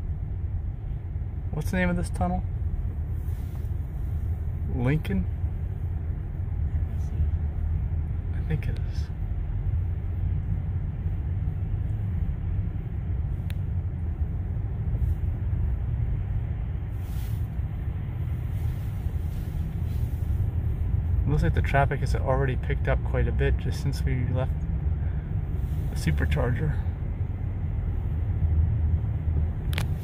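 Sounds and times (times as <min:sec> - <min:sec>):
road and tyre noise rumble: 0:00.0 - 0:30.0.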